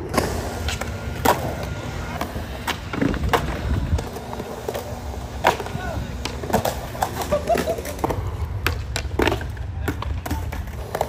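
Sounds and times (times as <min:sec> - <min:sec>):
skateboard clacking on ground: 0:00.0 - 0:11.0
skateboard wheels rolling on concrete: 0:00.0 - 0:11.0.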